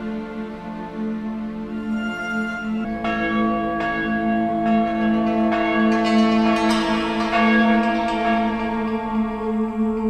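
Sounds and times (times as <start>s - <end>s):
sustained musical drone: 0.0s - 10.0s
church bells ringing: 1.9s - 10.0s.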